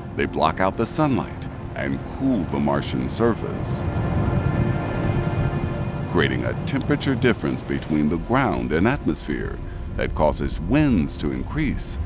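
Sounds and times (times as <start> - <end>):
deep wind rumble: 0.0 - 12.0
droning music score: 0.0 - 12.0.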